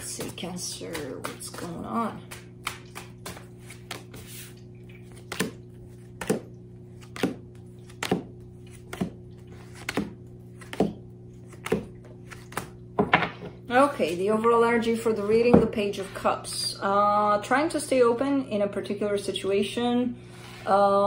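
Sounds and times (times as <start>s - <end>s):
steady low hum: 0.0s - 21.0s
cards slapping onto wooden table: 5.2s - 5.6s, 6.2s - 8.3s, 9.7s - 13.4s.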